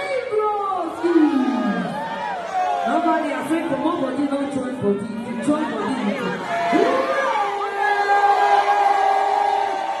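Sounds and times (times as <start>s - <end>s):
noise of a packed room: 0.0s - 10.0s.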